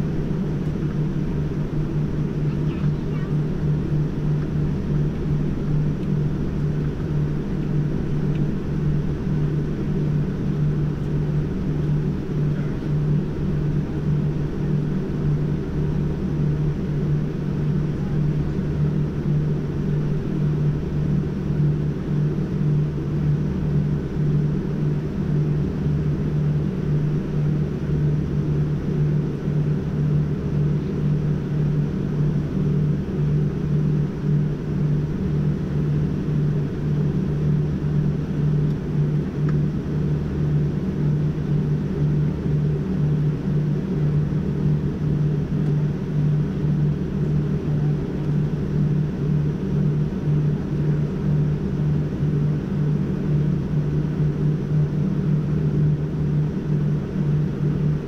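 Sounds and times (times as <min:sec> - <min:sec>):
airplane cabin drone: 0:00.0 - 0:58.0.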